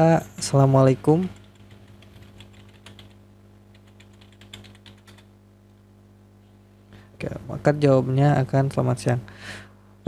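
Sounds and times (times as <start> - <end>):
steady low hum: 0.0 - 10.0
typing on computer keyboard: 1.3 - 5.3.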